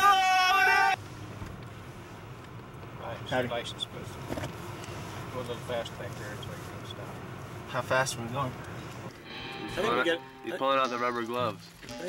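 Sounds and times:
car interior rumble: 0:00.2 - 0:09.2.

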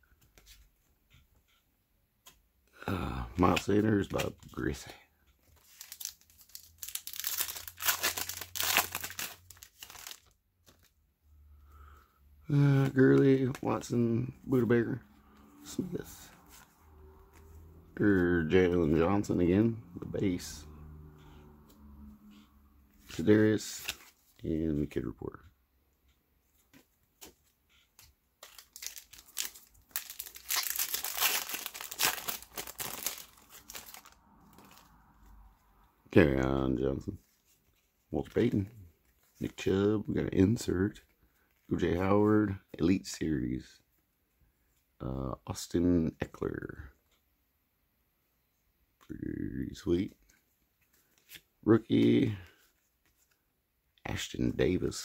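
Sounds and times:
wrapper crinkling and tearing: 0:05.6 - 0:10.9, 0:28.4 - 0:34.9.

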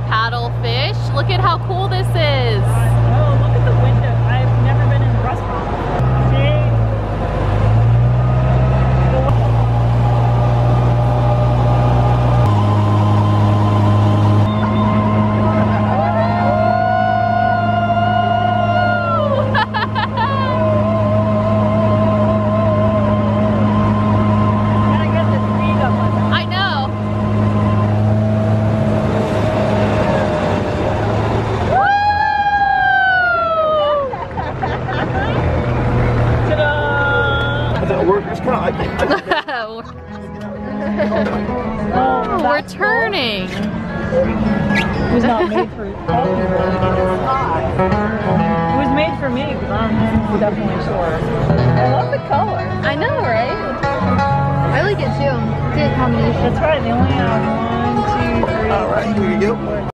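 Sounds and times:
car engine running steadily: 0:00.0 - 0:32.2, 0:34.1 - 0:59.9.

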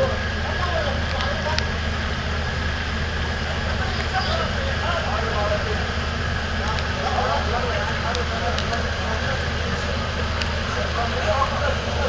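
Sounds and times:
indistinct voices: 0:00.0 - 0:12.0
ship diesel engines rumbling: 0:00.0 - 0:12.0.

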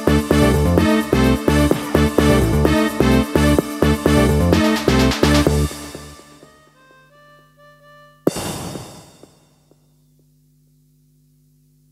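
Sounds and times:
karaoke backing track: 0:00.0 - 0:06.1
low steady hum: 0:09.2 - 0:11.9.

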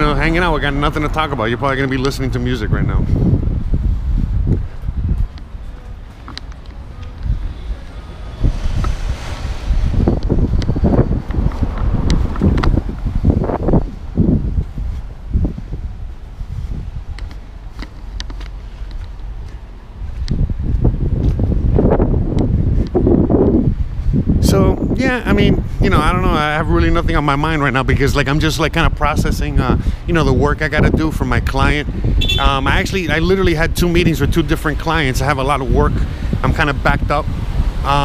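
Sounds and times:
traffic driving past: 0:00.0 - 0:22.0
wind buffeting microphone: 0:00.0 - 0:38.0.

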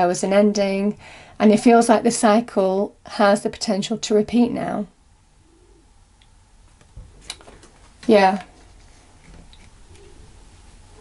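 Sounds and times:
faint low coo-like call: 0:05.4 - 0:05.9, 0:09.9 - 0:11.0.

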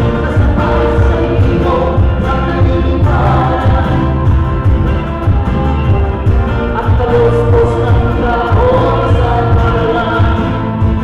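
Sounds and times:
folk-rock band playing: 0:00.0 - 0:11.0
voices singing together: 0:00.0 - 0:11.0.

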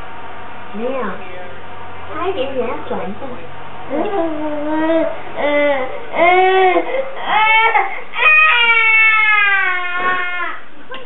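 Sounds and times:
baby crying: 0:04.2 - 0:10.6.

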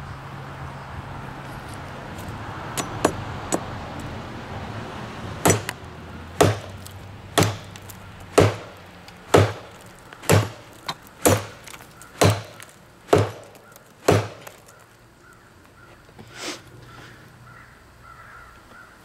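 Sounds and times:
machete chopping into tree trunk: 0:02.8 - 0:03.7, 0:05.4 - 0:05.8, 0:06.4 - 0:14.8.

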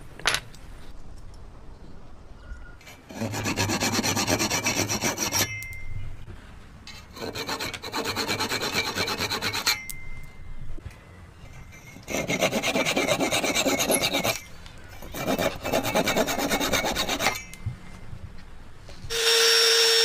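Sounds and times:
hand tool rasping on wood: 0:03.1 - 0:05.5, 0:07.1 - 0:09.8, 0:12.0 - 0:17.4.

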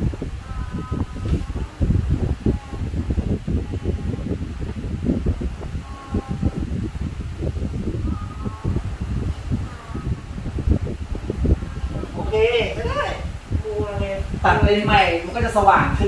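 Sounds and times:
air buffeting the microphone: 0:00.0 - 0:16.0.

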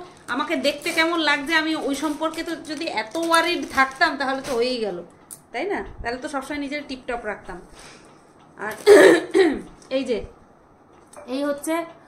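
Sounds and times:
woman speaking: 0:00.0 - 0:07.7, 0:08.6 - 0:10.4.

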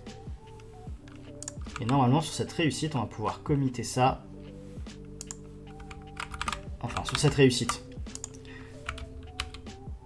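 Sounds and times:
typing on computer keyboard: 0:01.4 - 0:02.0, 0:05.2 - 0:09.6.

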